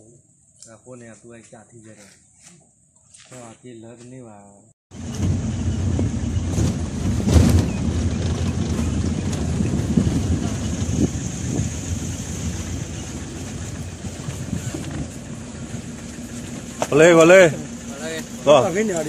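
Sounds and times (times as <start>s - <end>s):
vehicle engine and tyre rumble: 4.9s - 19.0s
vehicle knocking over bumps: 5.0s - 19.0s.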